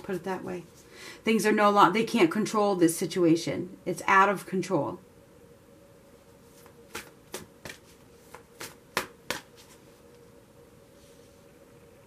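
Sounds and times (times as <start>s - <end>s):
cards being shuffled: 6.5s - 9.8s.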